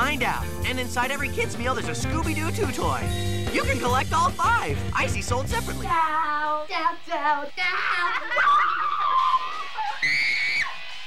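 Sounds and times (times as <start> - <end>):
loud high-pitched scream: 7.8 - 10.9.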